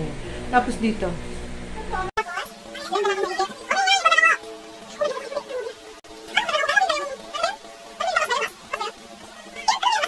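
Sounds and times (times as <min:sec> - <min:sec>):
background music: 0:02.2 - 0:10.0.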